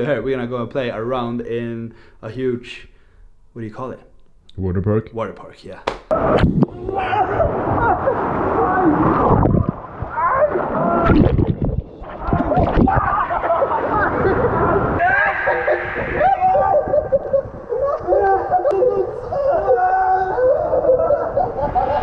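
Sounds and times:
water rushing and splashing: 0:06.1 - 0:16.1.

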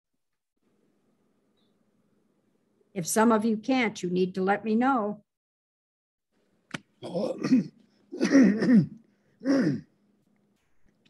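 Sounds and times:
woman clearing her throat: 0:07.0 - 0:09.9.

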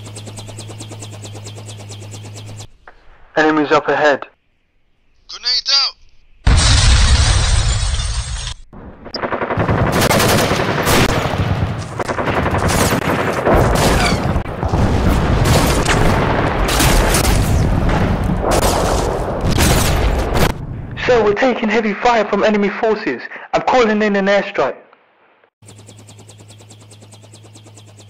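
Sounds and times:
rapid gunfire: 0:00.0 - 0:02.7, 0:09.1 - 0:20.6.

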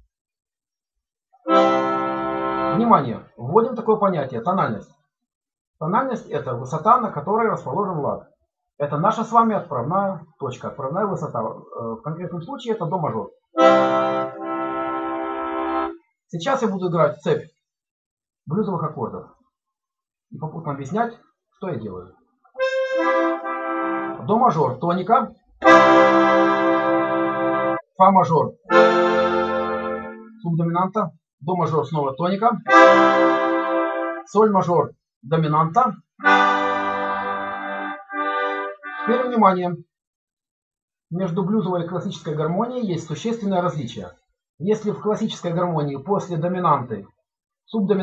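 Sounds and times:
button accordion holding chords: 0:01.5 - 0:03.0, 0:13.6 - 0:16.0, 0:22.6 - 0:24.4, 0:25.6 - 0:27.8, 0:28.7 - 0:30.4, 0:32.7 - 0:34.3, 0:36.2 - 0:39.3.

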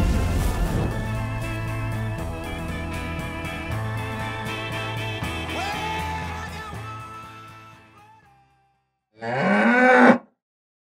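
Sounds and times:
cow mooing: 0:09.2 - 0:10.2.

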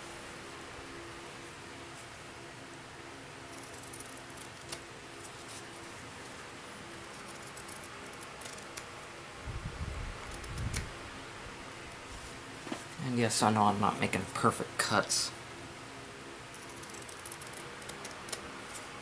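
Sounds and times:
faint steady hum: 0:00.0 - 0:19.0
scissors snipping fabric: 0:07.0 - 0:08.9, 0:16.6 - 0:18.4.

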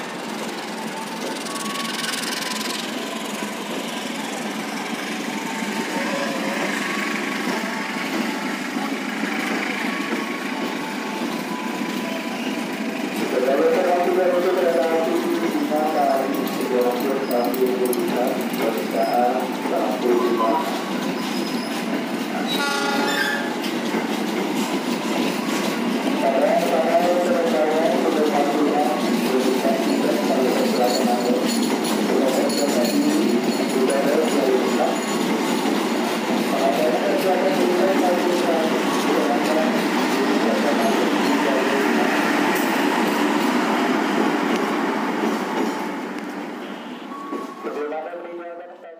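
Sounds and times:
crowd voices: 0:00.0 - 0:22.2
train wheels rumbling on rails: 0:00.0 - 0:48.9
train horn tone: 0:22.5 - 0:23.6.

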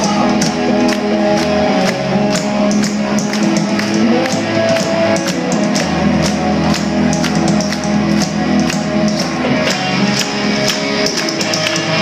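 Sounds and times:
bass guitar: 0:00.0 - 0:12.0
drum beat: 0:00.0 - 0:12.0
electric guitars: 0:00.0 - 0:12.0.

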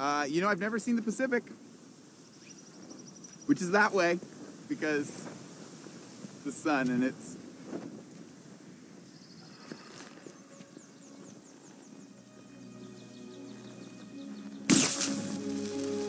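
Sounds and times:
quiet outdoor ambience: 0:00.0 - 0:16.0
film score music: 0:10.5 - 0:16.0
loud noisy burst: 0:14.7 - 0:16.0.

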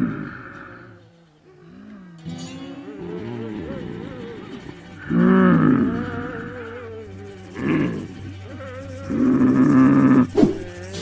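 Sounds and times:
loud roar-like calls: 0:00.0 - 0:11.0.

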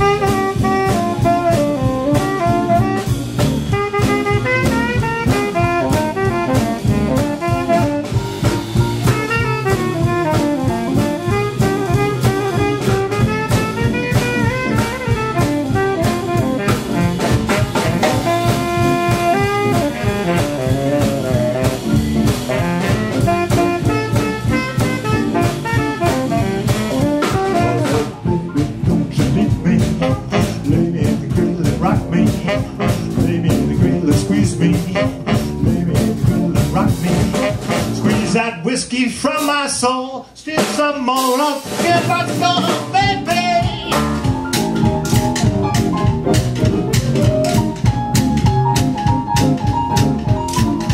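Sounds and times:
saxophones and trumpet melody: 0:00.0 - 0:38.6, 0:41.8 - 0:50.9
live blues band playing: 0:00.0 - 0:50.9
person singing: 0:28.5 - 0:38.7, 0:39.9 - 0:44.3.

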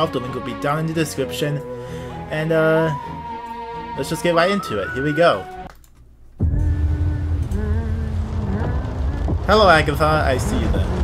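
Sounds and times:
deep steady rumble: 0:06.4 - 0:11.0.

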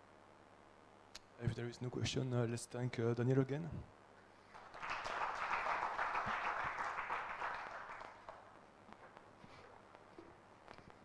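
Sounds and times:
audience applauding: 0:04.5 - 0:08.5.

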